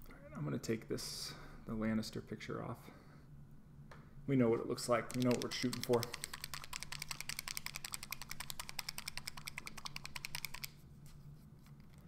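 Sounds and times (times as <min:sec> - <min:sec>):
rapid clicking: 0:05.0 - 0:10.8.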